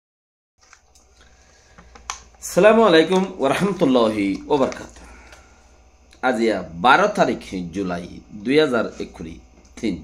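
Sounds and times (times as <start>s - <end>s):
steady low hum: 0.6s - 10.0s.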